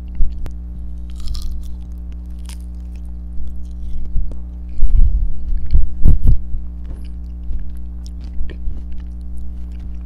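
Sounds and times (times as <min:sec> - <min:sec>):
close chewing candy: 0:00.0 - 0:04.3, 0:06.8 - 0:10.0
electrical mains hum: 0:00.0 - 0:10.0.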